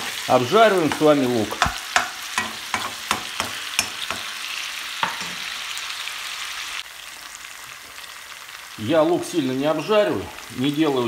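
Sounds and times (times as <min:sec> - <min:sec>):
food sizzling in a pan: 0:00.0 - 0:11.0
spoon clicking in a pan: 0:01.6 - 0:04.3.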